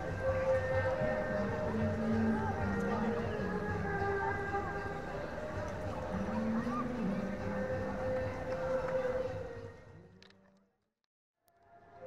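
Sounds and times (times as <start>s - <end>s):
outdoor crowd: 0.0s - 10.8s, 11.4s - 12.0s.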